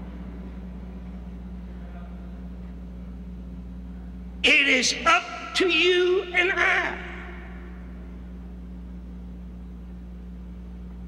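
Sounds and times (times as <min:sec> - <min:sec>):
low recording hum and hiss: 0:00.0 - 0:11.0
speech echo: 0:04.4 - 0:08.0.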